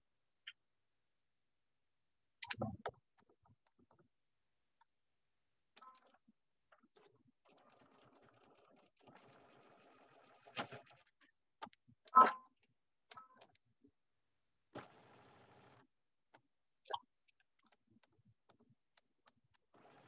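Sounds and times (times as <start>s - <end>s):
sewing machine stitching: 7.4s - 11.2s, 14.8s - 15.9s, 19.6s - 20.0s.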